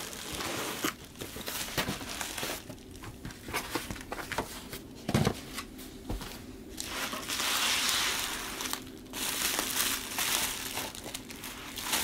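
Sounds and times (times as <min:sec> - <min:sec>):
bubble wrap crinkling: 0:00.0 - 0:04.2, 0:06.8 - 0:12.0.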